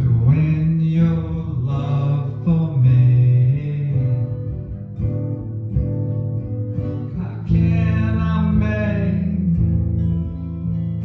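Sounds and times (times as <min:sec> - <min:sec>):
guitars playing slow soul tune: 0:00.0 - 0:11.0.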